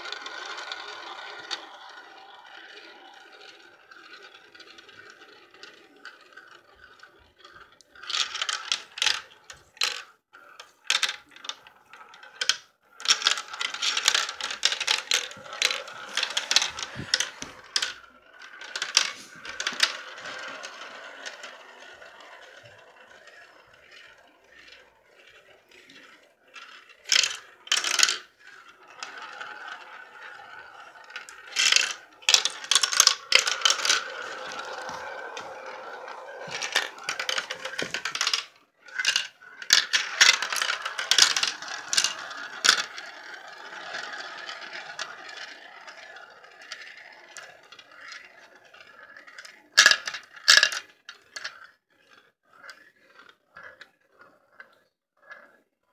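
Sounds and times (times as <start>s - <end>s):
marbles clicking on track: 0.0s - 55.6s
marbles rolling in plastic funnels: 0.0s - 55.9s.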